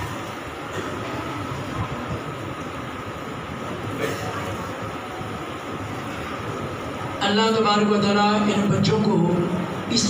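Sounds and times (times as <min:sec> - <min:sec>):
faint high hum: 0:00.0 - 0:10.0.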